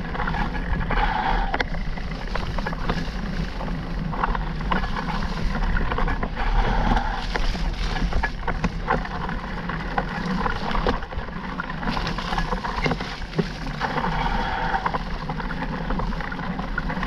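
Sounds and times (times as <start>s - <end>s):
bike clicks and rattles: 0.0s - 17.0s
bike tyres on dirt trail: 0.0s - 17.0s
wind on microphone: 0.0s - 17.0s.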